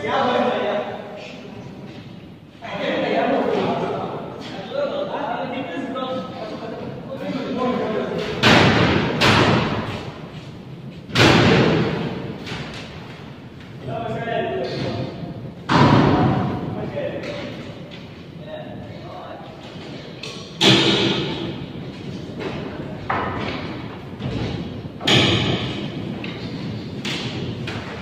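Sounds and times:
heavy wooden thuds echoing: 8.1s - 10.4s, 11.0s - 13.5s, 14.6s - 18.1s, 20.6s - 28.0s.

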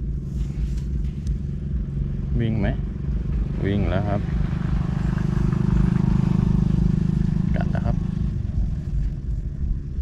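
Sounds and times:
small engine droning: 0.0s - 10.0s.

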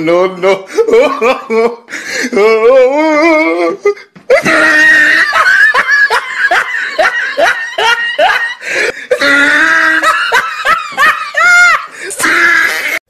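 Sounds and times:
person laughing: 0.4s - 13.0s
held vocal sound: 0.5s - 5.1s.

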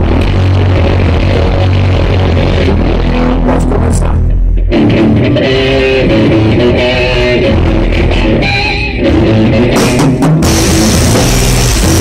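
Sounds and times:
rock band playing loudly: 0.0s - 12.0s
cymbals crashing: 10.4s - 12.0s.

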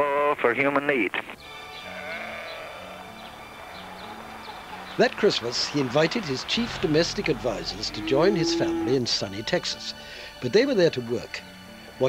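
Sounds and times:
farm animal bleating: 1.7s - 3.3s, 6.9s - 9.2s.

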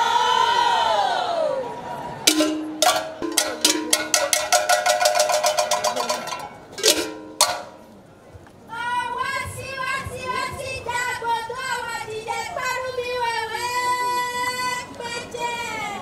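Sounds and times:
metal bell ringing strikes: 2.3s - 7.8s.

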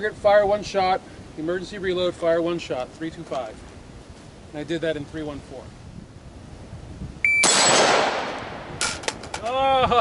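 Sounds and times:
shot timer beep: 7.2s - 7.6s
rifle shot with echo: 7.4s - 8.7s.

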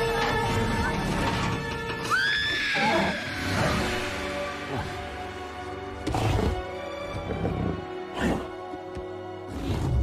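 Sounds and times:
orchestral film score: 0.0s - 10.0s.

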